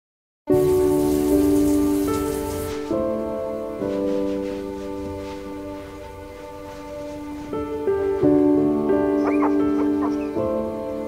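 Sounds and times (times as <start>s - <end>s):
shower water spraying: 0.5s - 8.2s
soft sustained music chords: 0.5s - 11.0s.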